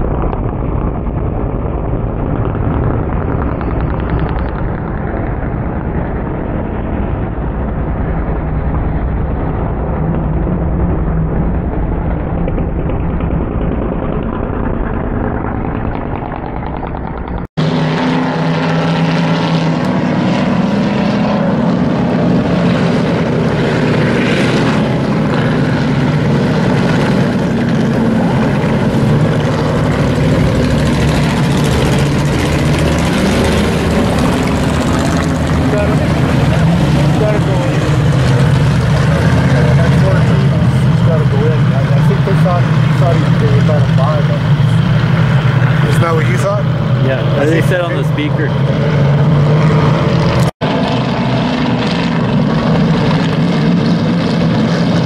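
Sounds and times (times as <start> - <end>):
race car engines droning: 0.0 - 55.0.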